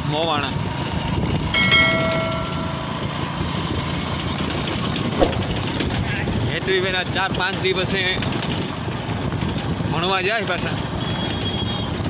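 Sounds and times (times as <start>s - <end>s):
bell-like chime: 1.6s - 3.6s.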